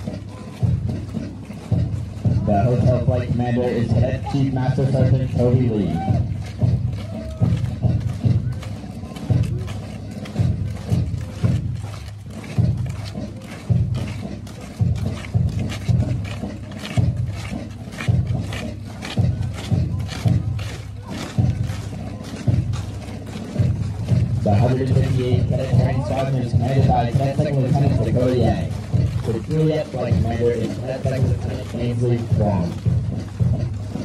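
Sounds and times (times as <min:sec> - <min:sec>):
footsteps marching on dirt road: 0:00.0 - 0:34.0
march music: 0:00.0 - 0:34.0.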